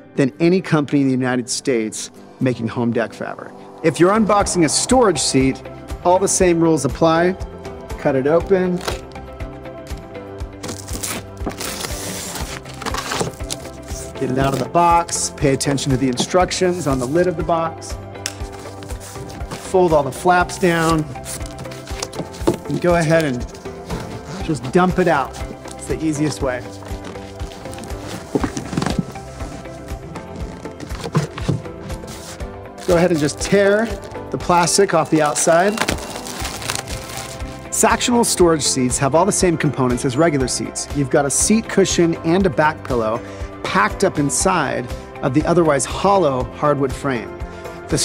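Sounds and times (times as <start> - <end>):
background music with beat: 3.8 - 48.0.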